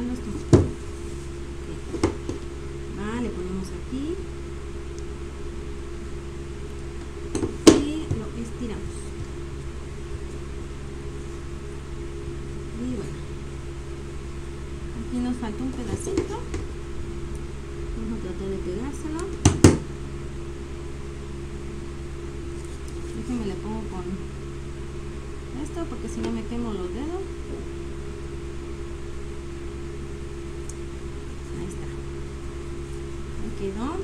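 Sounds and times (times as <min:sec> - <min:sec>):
electric fan humming: 0:00.0 - 0:34.0
fabric rustling: 0:00.7 - 0:01.9.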